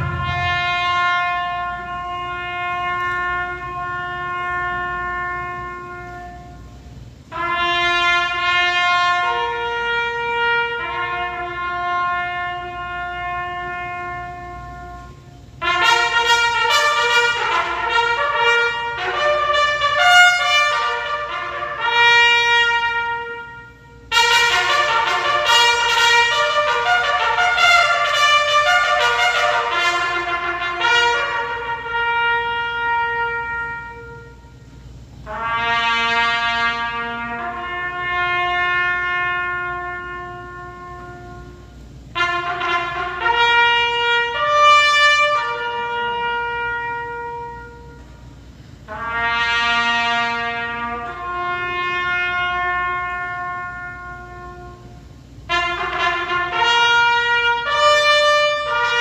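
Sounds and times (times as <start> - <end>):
trumpets playing long notes: 0.0 - 59.0.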